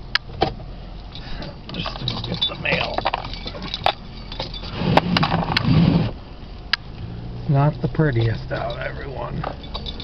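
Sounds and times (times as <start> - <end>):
low rumble inside a car: 0.0 - 10.0.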